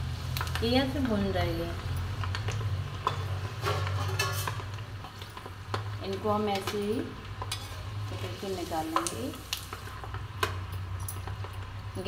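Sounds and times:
peanuts crackling in hot oil: 0.0s - 12.0s
metal skimmer scraping a pan: 3.1s - 4.6s, 7.4s - 8.8s.

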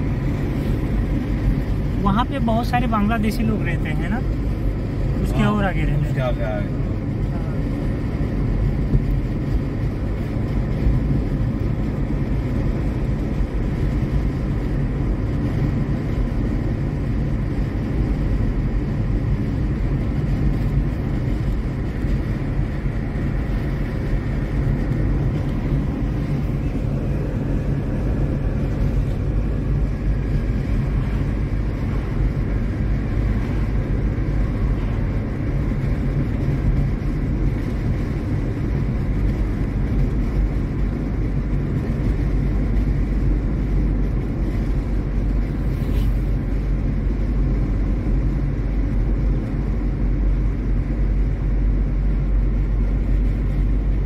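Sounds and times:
car cabin road and engine rumble: 0.0s - 54.0s.

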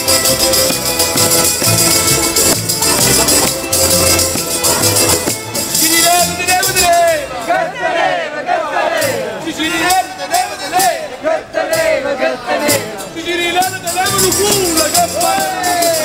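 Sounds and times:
acoustic street band playing: 0.0s - 16.0s
man singing loudly: 9.0s - 16.0s.

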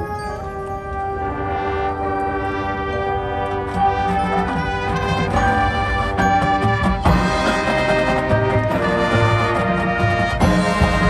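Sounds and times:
marching band sustained chord: 0.1s - 11.0s.

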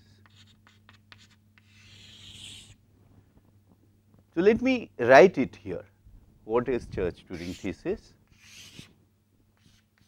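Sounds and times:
chalk scraping on blackboard: 0.2s - 2.8s, 7.4s - 7.7s, 8.3s - 8.9s, 9.6s - 10.0s.

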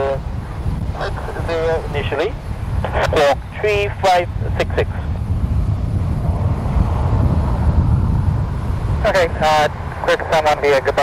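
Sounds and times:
turboprop engines rumbling: 0.0s - 11.0s.

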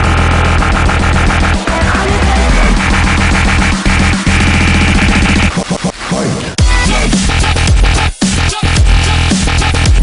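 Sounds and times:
dubstep electronic music: 0.0s - 10.0s.

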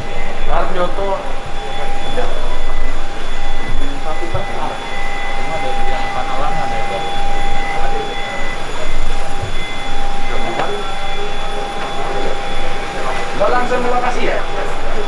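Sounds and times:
people talking indistinctly: 0.0s - 15.0s.

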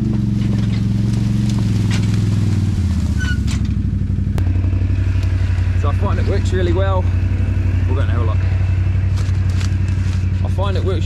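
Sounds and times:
motorbike engine running: 0.0s - 11.0s.

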